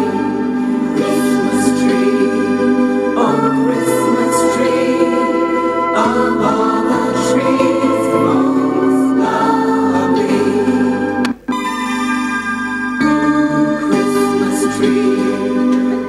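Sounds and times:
group singing christmas song: 0:00.0 - 0:11.3, 0:13.0 - 0:16.0
instrumental accompaniment: 0:00.0 - 0:16.0.

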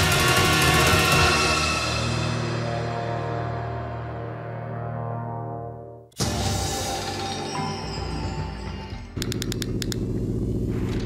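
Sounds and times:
sharp clicks: 0:09.2 - 0:10.0.

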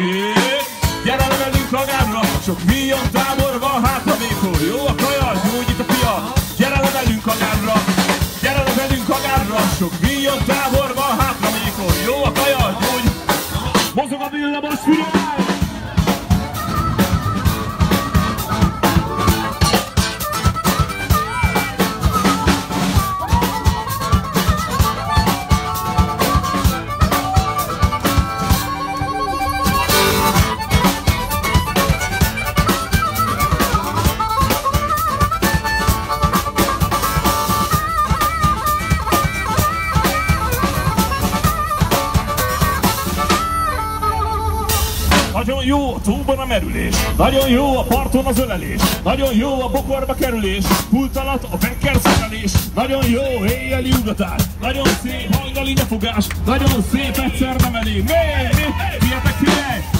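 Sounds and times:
amplified harmonica solo: 0:00.0 - 0:45.4
percussion beat: 0:00.0 - 0:45.5, 0:46.1 - 0:59.9.

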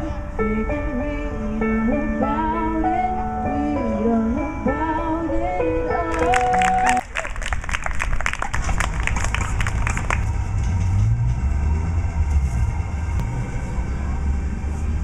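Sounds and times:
low rumble of outdoor noise: 0:00.0 - 0:15.0
audience clapping: 0:06.1 - 0:10.4.

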